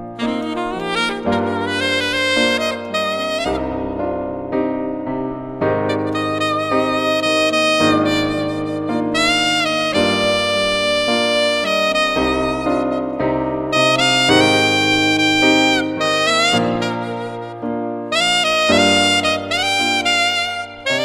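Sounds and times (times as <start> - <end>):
piano accompaniment: 0.0 - 21.0
saxophone melody: 0.0 - 21.0.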